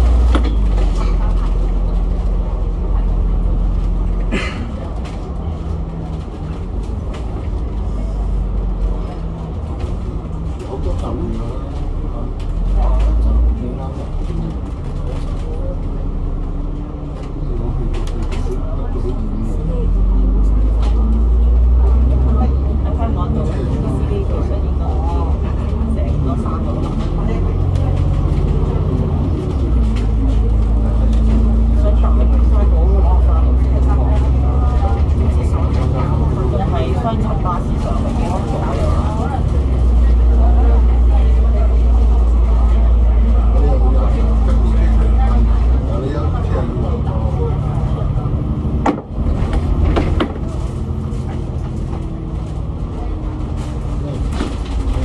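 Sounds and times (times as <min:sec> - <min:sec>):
bus diesel engine rumble: 0:00.0 - 0:55.0.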